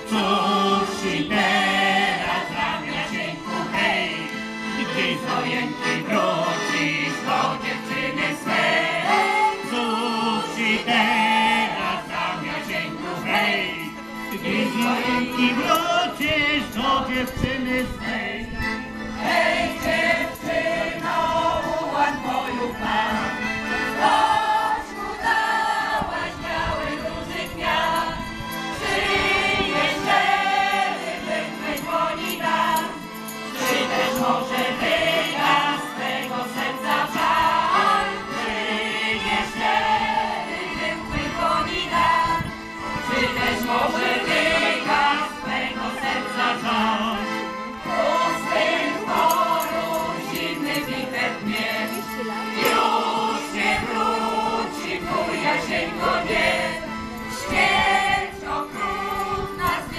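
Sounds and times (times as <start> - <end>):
large mixed choir singing: 0.0 - 59.9.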